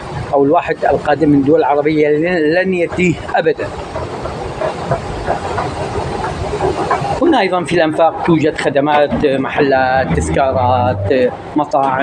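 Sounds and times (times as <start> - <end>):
low rumble and hiss: 6.6 - 12.0.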